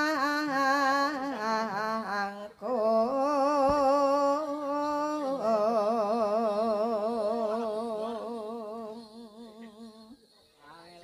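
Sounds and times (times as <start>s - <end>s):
person singing a long note: 0.0s - 10.2s.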